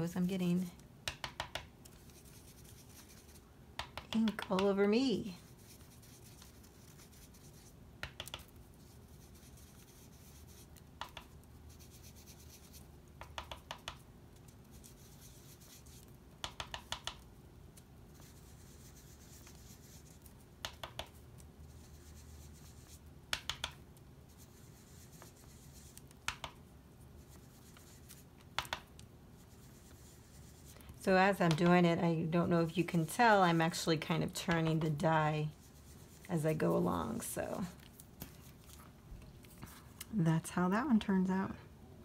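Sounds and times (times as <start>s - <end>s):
foam dauber tapping card: 1.0s - 4.8s, 8.0s - 8.5s, 11.0s - 11.4s, 13.2s - 14.0s, 16.4s - 17.2s, 20.6s - 21.2s, 23.3s - 23.8s, 25.2s - 26.6s, 27.6s - 28.9s, 31.4s - 31.8s.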